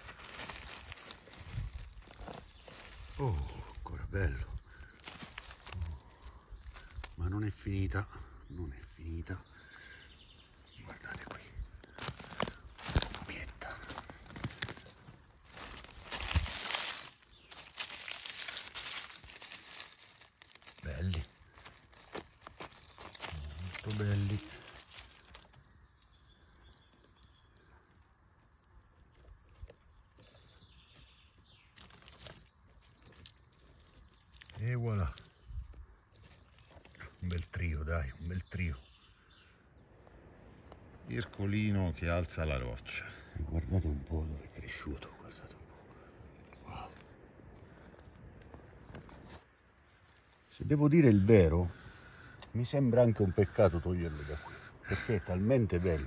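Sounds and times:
leaves and twigs crunching: 0.0 - 56.0.

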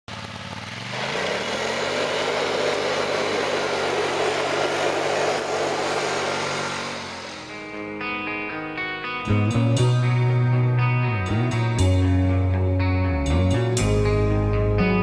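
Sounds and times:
atv engine revving: 0.1 - 7.9.

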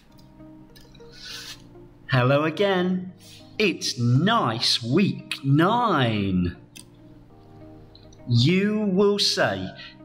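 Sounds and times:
faint background music: 0.0 - 10.0
chalk scratching on chalkboard: 1.1 - 1.7.

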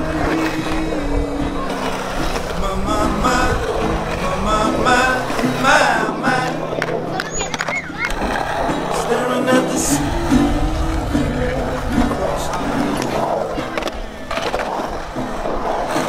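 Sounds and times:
background music with singing: 0.0 - 7.0, 8.4 - 14.5
skateboard wheels rolling on concrete: 0.0 - 16.0.

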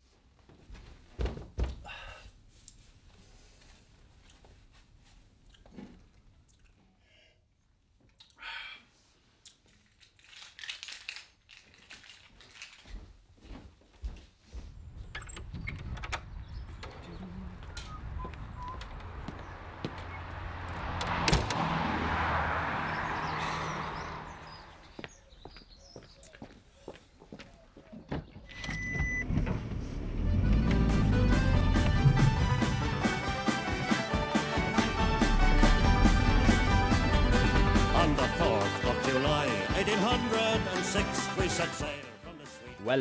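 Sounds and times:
footsteps indoors: 0.0 - 1.8, 2.4 - 6.1, 12.2 - 15.3, 24.8 - 28.5
outdoor background noise: 0.0 - 33.0.

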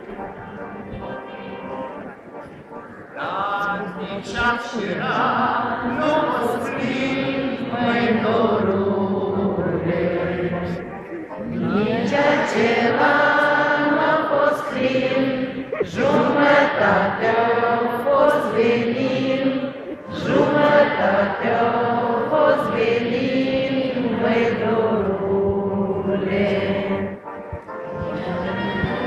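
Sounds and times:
audience singing unaccompanied: 0.0 - 29.0.

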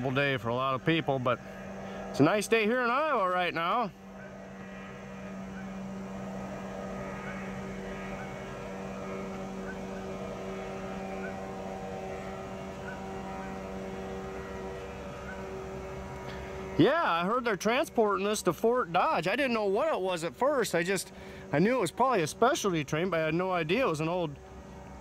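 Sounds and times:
steady mechanical hum: 0.0 - 25.0.

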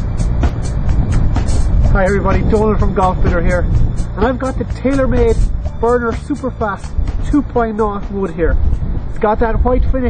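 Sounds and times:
background music: 0.0 - 9.9
wind on microphone: 0.0 - 10.0
man speaking: 1.9 - 8.6, 9.2 - 10.0.

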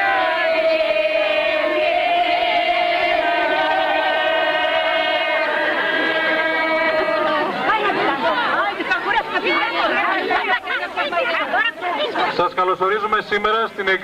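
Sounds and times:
women singing together: 0.0 - 11.8
crowd chatter: 0.0 - 14.0.

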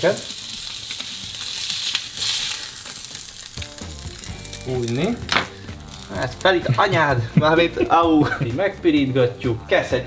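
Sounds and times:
patties sizzling in frying pan: 0.0 - 9.4.

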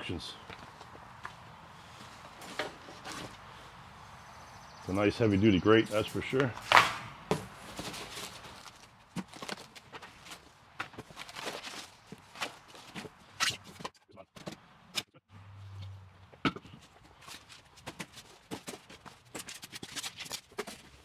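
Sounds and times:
cardboard rustling and scraping: 2.0 - 3.4, 5.9 - 14.6, 17.1 - 21.0.

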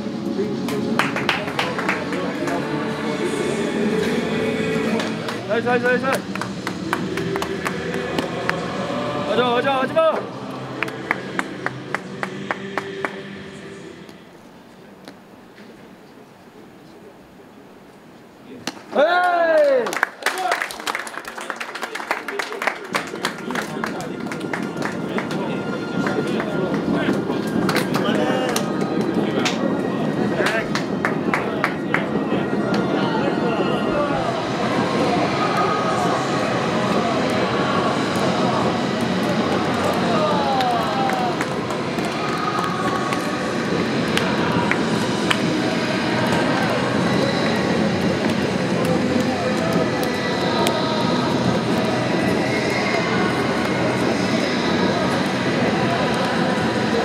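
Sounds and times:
men chattering: 0.3 - 14.0, 21.4 - 57.0
hand slaps and claps: 6.1 - 8.6, 18.6 - 20.8
echoing crowd roar: 29.7 - 57.0.

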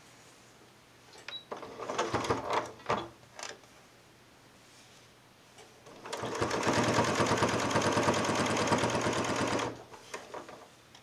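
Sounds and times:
sewing machine stitching: 1.6 - 2.8, 5.9 - 10.6.

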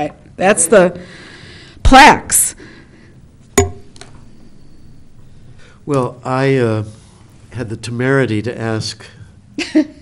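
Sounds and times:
sharp clink with short ring: 3.6 - 4.0.

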